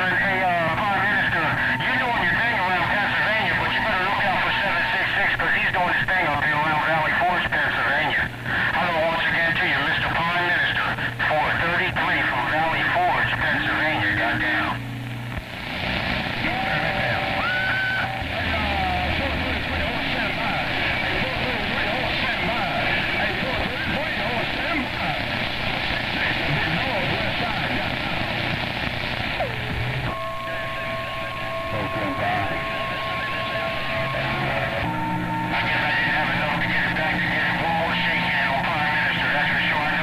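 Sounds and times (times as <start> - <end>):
garbled radio voices: 0.0 - 40.0
radio static hiss: 0.0 - 40.0.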